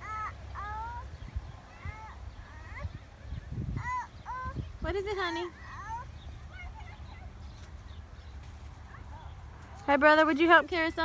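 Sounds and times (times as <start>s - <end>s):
wind rumble on microphone: 1.0s - 9.7s.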